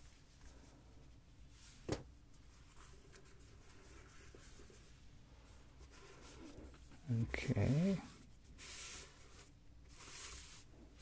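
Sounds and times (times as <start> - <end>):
hand rustling over surface: 0.0 - 11.0.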